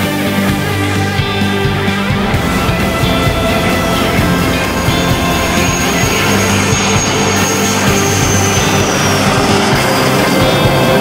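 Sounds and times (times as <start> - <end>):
background music: 0.0 - 11.0
jet engine flying past: 0.6 - 11.0.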